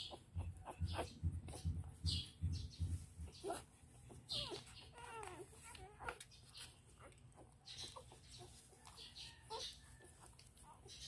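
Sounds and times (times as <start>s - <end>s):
puppies squeaking faintly: 0.0s - 11.0s.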